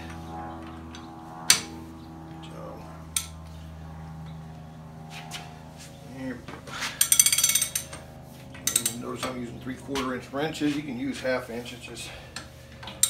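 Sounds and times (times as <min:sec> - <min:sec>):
ratchet wrench clicking rapidly: 0:07.0 - 0:08.0, 0:08.6 - 0:09.0.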